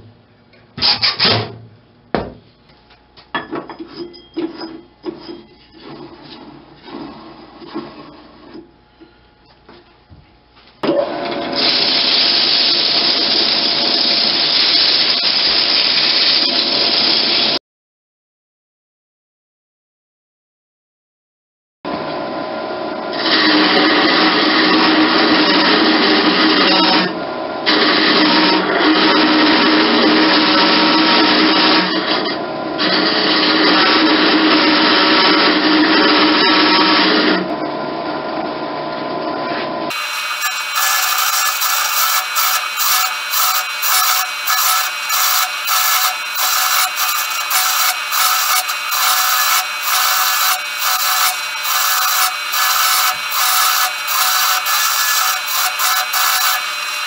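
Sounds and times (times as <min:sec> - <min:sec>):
lathe tool scraping wood: 0:03.8 - 0:08.6, 0:23.1 - 0:37.5, 0:39.9 - 0:57.0.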